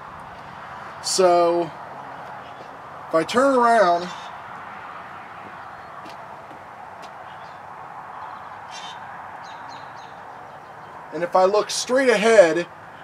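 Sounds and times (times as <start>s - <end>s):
steady outdoor hiss: 0.0s - 13.0s
small birds chirping: 2.1s - 3.0s, 4.0s - 4.6s, 5.3s - 11.1s.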